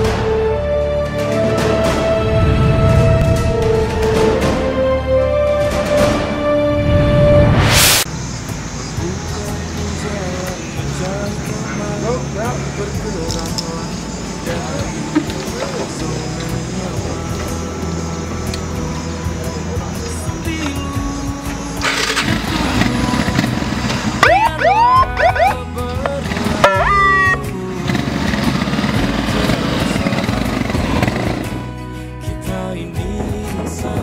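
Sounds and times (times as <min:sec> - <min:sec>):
background music: 0:00.0 - 0:34.0
motorcycle engines running: 0:08.2 - 0:31.8
siren whoops: 0:24.2 - 0:25.6, 0:26.6 - 0:27.4.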